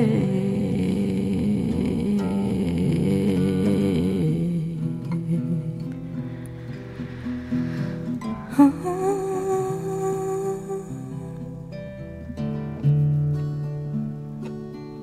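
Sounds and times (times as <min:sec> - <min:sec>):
held vocal note: 0:00.0 - 0:11.3
woman humming: 0:00.0 - 0:11.4
plucked acoustic guitar: 0:00.0 - 0:15.0.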